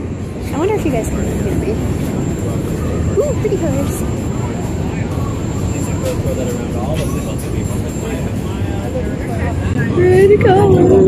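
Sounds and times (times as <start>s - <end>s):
boat engine drone: 0.0s - 11.0s
faint passenger chatter: 0.0s - 11.0s.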